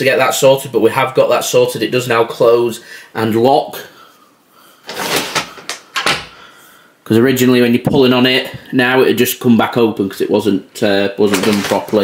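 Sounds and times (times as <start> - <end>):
door being pushed shut: 4.9 - 6.4.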